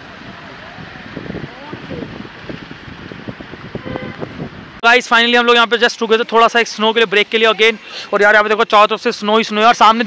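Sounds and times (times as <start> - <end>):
wind on microphone: 0.0 - 4.8.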